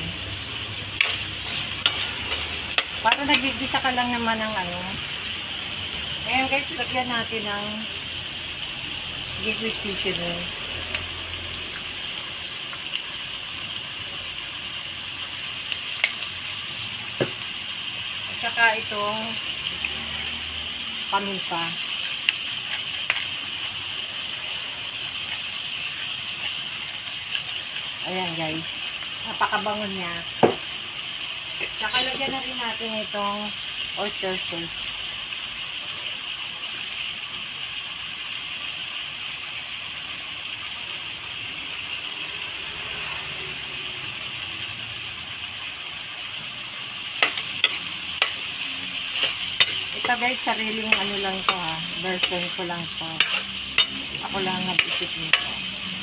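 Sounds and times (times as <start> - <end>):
food sizzling in hot oil: 0.0 - 56.0
metal ladle scraping wok: 0.4 - 3.9, 47.1 - 56.0.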